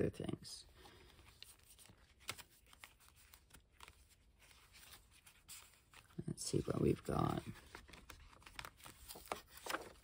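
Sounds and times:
paper pages rustling: 0:00.7 - 0:10.0
soft ticks of pages turned: 0:01.2 - 0:06.2, 0:06.8 - 0:10.0.

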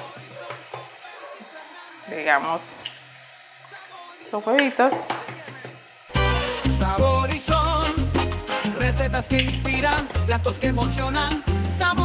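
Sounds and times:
chicken sizzling in oil: 0:00.0 - 0:12.0.

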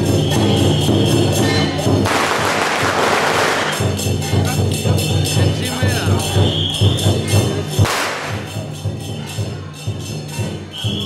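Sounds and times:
faint percussion music: 0:00.0 - 0:11.0
firecrackers crackling: 0:00.0 - 0:11.0.

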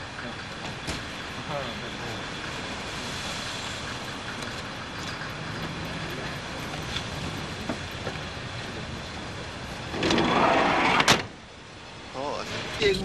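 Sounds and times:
large vehicle running close by: 0:00.0 - 0:11.1
street traffic noise: 0:00.0 - 0:13.0.

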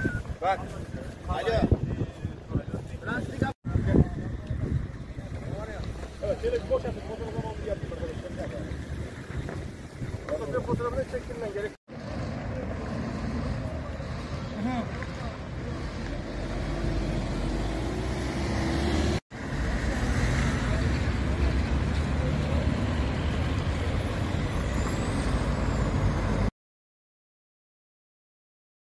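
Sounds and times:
traffic rumble: 0:00.0 - 0:26.5.

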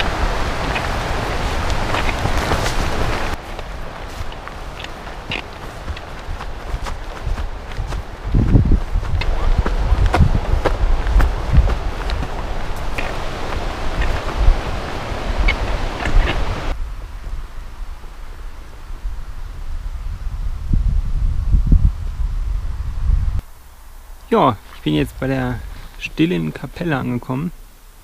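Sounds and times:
grass stalks swishing: 0:00.0 - 0:09.4
footsteps through tall grass: 0:00.0 - 0:16.8
wind rumbling on microphone: 0:00.0 - 0:26.1.

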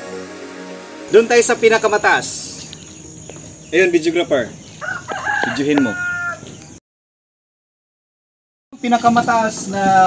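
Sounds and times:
rooster crowing: 0:04.5 - 0:06.7.

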